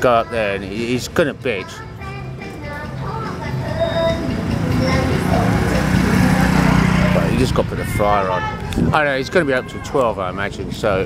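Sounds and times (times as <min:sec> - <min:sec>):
vehicle engine running: 0:02.9 - 0:08.6.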